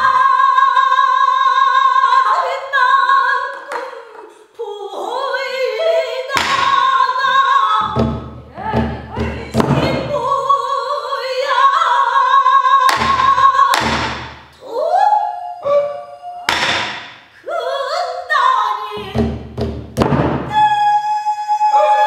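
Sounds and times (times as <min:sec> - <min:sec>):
woman singing: 0:00.0 - 0:19.4, 0:20.4 - 0:22.0
barrel drum strokes: 0:07.8 - 0:10.2.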